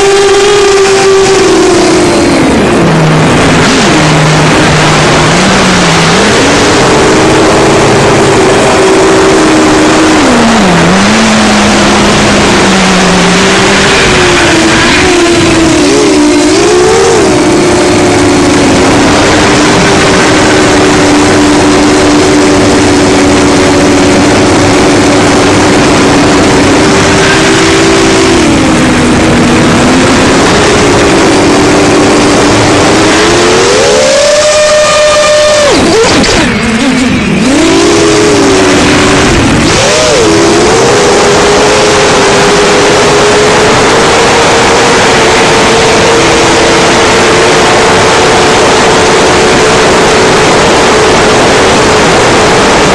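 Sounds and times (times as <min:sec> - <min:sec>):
drone motors whining: 0:00.0 - 0:52.9
steady rushing noise: 0:00.0 - 0:52.9.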